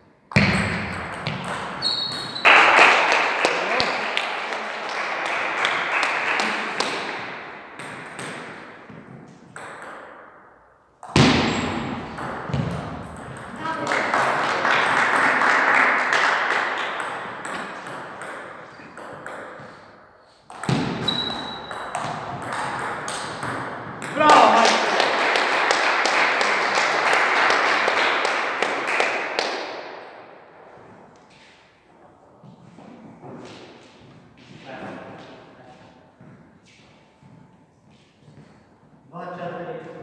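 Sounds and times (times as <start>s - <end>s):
voices in a hall: 2.4s - 7.8s, 13.4s - 17.0s, 24.0s - 40.0s.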